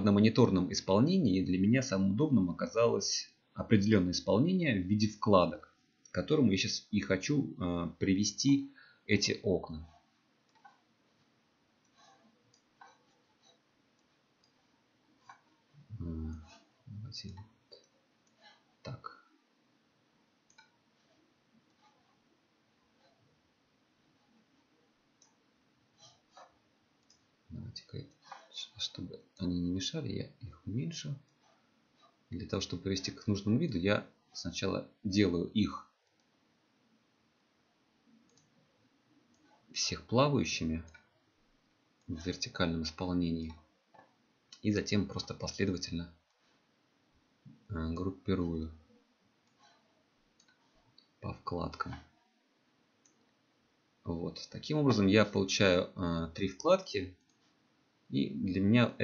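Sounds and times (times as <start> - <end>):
computer mouse clicks: 9.9 - 10.8, 11.8 - 15.6, 20.4 - 22.2, 25.2 - 25.4, 26.0 - 27.3, 36.0 - 36.4, 38.2 - 38.6, 49.4 - 51.1, 53.0 - 53.3
computer mouse click: 20.5 - 20.8, 38.3 - 38.5.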